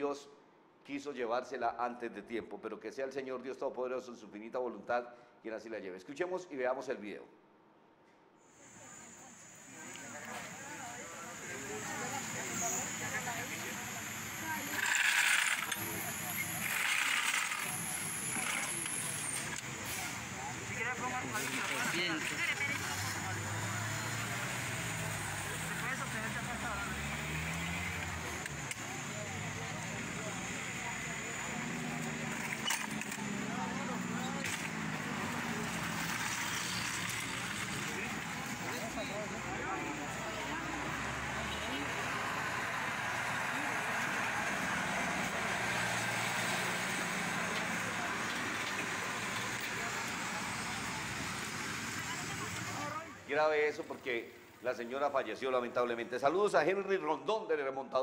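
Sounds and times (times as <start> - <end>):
indistinct voices talking: 8.7 - 54.2.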